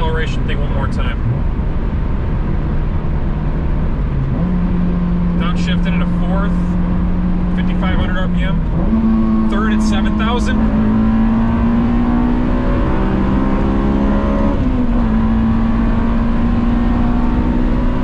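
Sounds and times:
car engine accelerating: 0.0 - 18.0.

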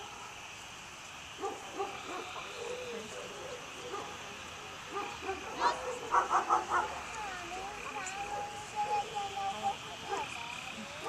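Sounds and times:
dogs barking: 1.4 - 2.5, 3.2 - 4.2, 4.9 - 7.1, 10.0 - 10.4.

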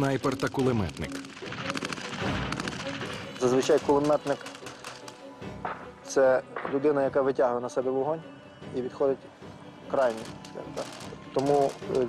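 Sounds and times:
machine gun firing bursts: 0.0 - 5.0.

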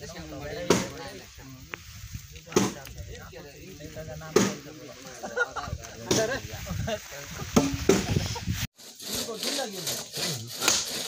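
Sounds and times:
hand saw rasping through log: 8.8 - 11.0
axe splitting logs: 9.0 - 11.0.

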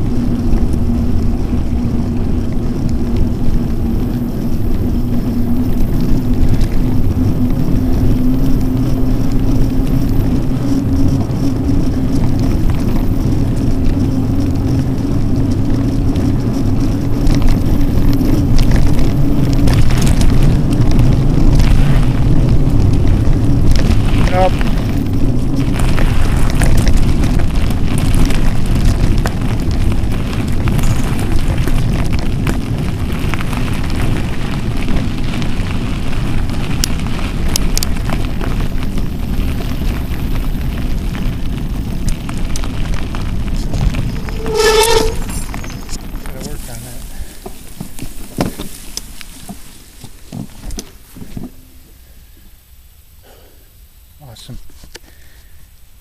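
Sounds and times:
bike tyres rolling over gravel: 0.0 - 56.0
wind rumbling on microphone: 0.0 - 56.0.

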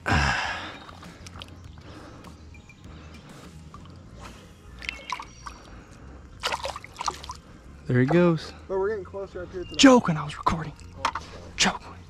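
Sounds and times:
creek water trickling: 0.0 - 12.0
fish splashing: 0.6 - 2.0, 6.4 - 7.5.

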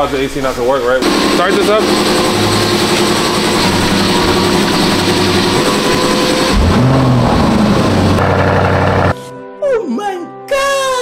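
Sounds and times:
car engine running through exhaust: 1.0 - 9.2
car engine starting and revving: 1.0 - 9.2.

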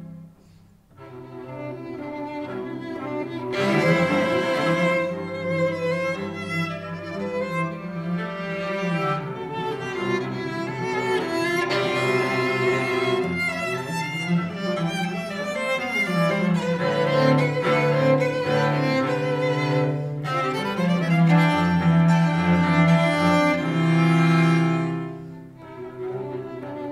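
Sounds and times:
cello long low notes: 0.0 - 26.9
violin: 0.0 - 26.9.

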